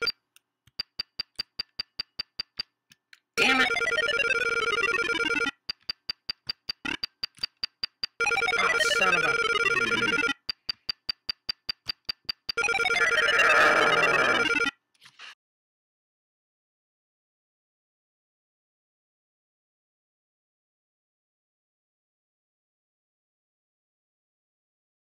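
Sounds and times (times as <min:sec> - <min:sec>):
rapid electronic beeps: 0:03.4 - 0:14.8.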